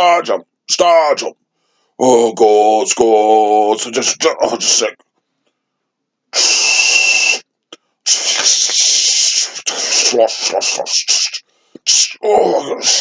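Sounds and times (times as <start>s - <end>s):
man hissing with his mouth: 6.4s - 7.4s, 8.1s - 12.2s.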